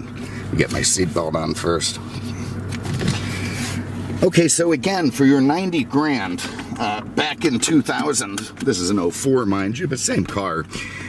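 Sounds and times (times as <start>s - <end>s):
car engine idling: 0.0s - 11.0s
seatbelt rustling swish: 2.1s - 4.2s.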